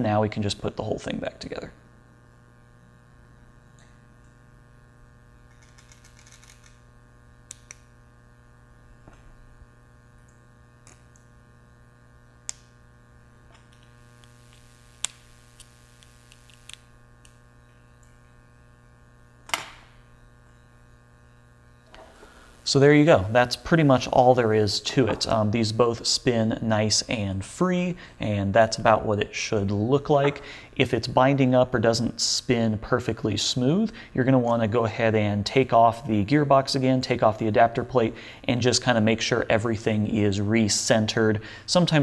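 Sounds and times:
steady electrical hum: 0.0 - 42.0
small metal parts clicking: 5.5 - 6.8.

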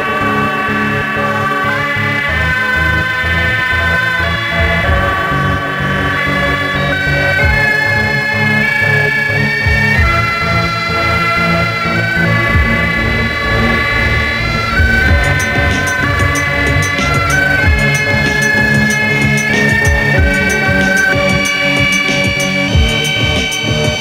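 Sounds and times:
pulsing bass line: 0.0 - 24.0
synthesizer horror theme: 0.0 - 24.0
ticking hi-hat percussion: 14.5 - 24.0.

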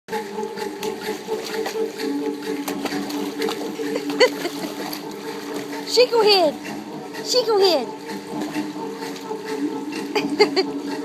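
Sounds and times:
steady low hum: 0.1 - 11.0
puppy splashing in water: 0.5 - 7.3.

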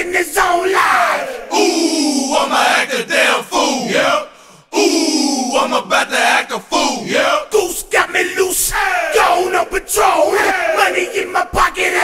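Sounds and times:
voices shouting and chanting: 0.0 - 12.0.

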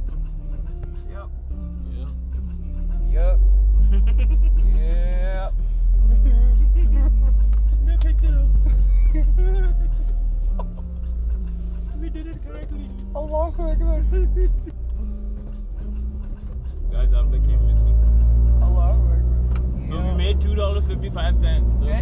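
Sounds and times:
car driving rumble inside cabin: 0.0 - 22.0
music with singing voice: 0.0 - 22.0.

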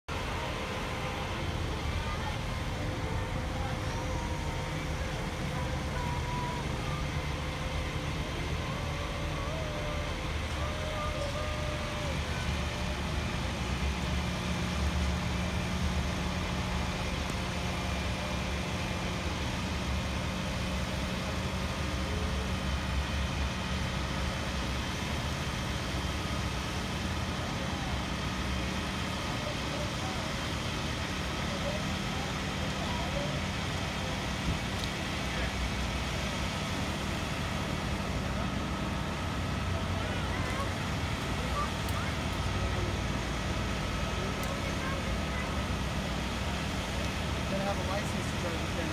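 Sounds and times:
truck engine droning: 0.0 - 48.9.

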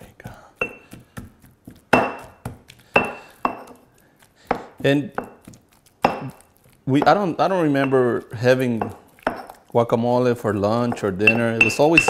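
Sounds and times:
stone on stone clink: 0.6 - 0.8, 3.0 - 3.8, 10.9 - 12.0
stone pestle pounding avocado: 0.6 - 3.8, 4.4 - 9.7, 10.7 - 12.0.

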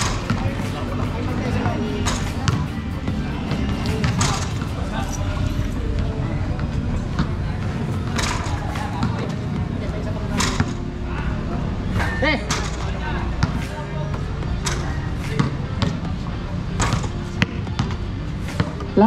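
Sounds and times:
basketballs bouncing on concrete: 0.0 - 5.0, 5.9 - 11.0, 12.0 - 18.0
basketball striking hoop: 16.8 - 18.0.

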